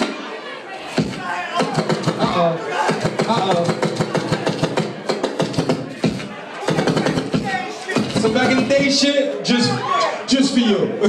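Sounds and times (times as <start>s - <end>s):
loud crowd noise: 0.0s - 11.0s
rapid percussive hits: 1.0s - 9.0s.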